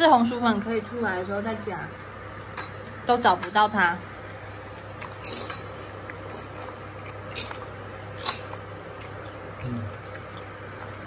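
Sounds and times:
induction cooktop hum: 0.0 - 11.0.

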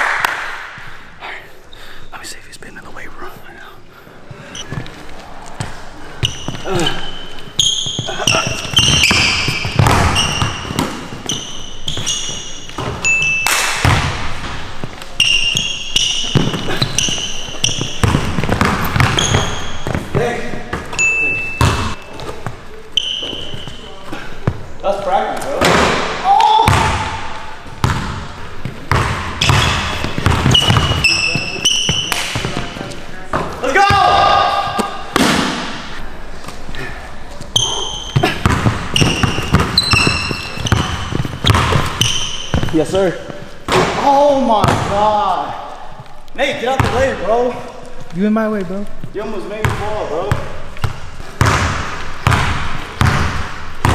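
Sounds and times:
sneaker squeaks on wooden floor: 5.5 - 24.7, 27.8 - 33.5, 37.4 - 43.8, 48.9 - 53.9
basketball bouncing on hardwood: 8.0 - 12.1, 16.3 - 20.9, 21.6 - 21.9, 27.8 - 32.7, 38.2 - 42.7, 49.6 - 53.9.

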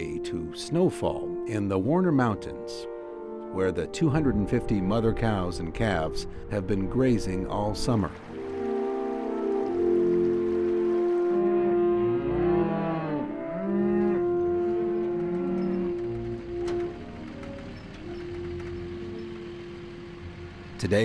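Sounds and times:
background music with held notes: 0.0 - 21.0
cattle mooing: 9.7 - 16.9.

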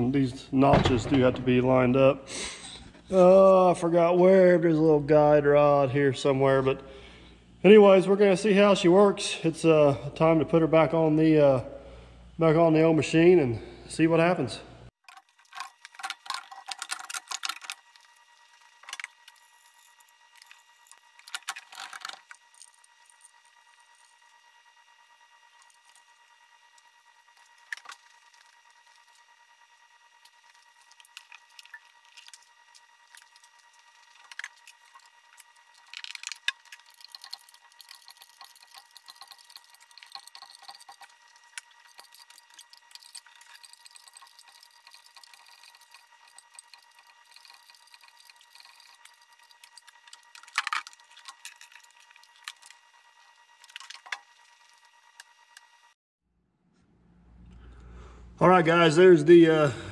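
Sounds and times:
faint high hum: 56.6 - 59.9.

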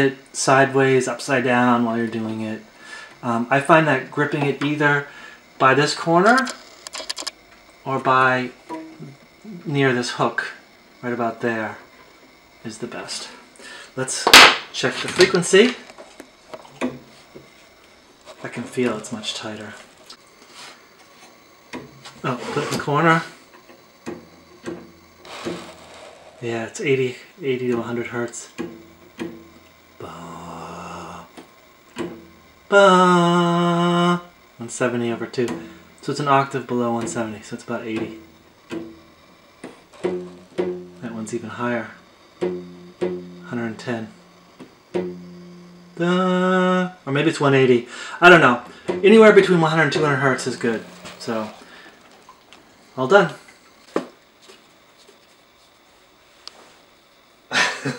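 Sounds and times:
drive belt plucked twang: 27.4 - 30.0, 35.1 - 46.8, 48.4 - 51.8.

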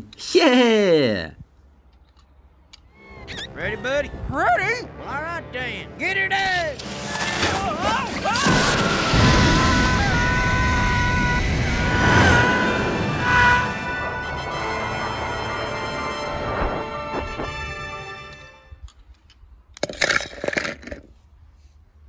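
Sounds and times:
cartoon rocket blast-off: 6.8 - 18.2
music holding steady notes: 13.6 - 18.7.

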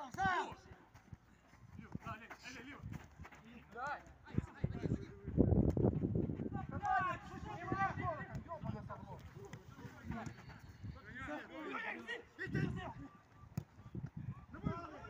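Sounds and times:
players shouting: 0.0 - 0.8, 6.5 - 13.4
running footsteps: 0.5 - 10.8.

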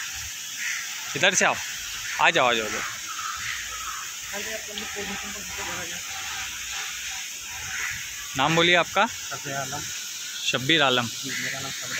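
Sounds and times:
hiss: 0.0 - 11.9.

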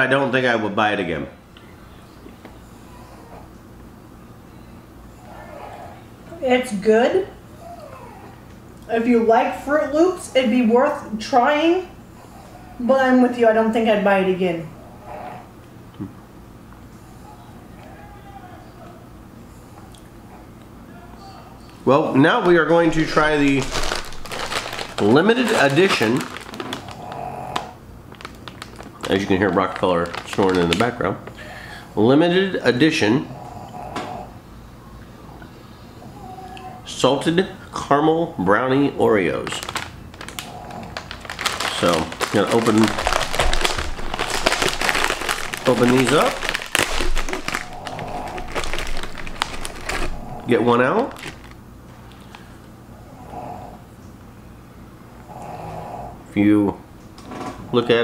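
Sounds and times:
plastic snack bag crinkling: 22.2 - 31.5, 39.1 - 52.5
faint snoring: 26.7 - 27.8, 33.2 - 34.4, 40.4 - 41.1, 42.9 - 50.7, 53.0 - 53.8, 55.2 - 56.2.

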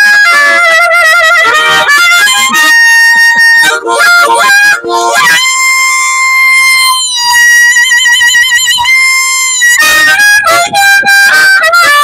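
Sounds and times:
harmonica solo: 0.0 - 12.0.

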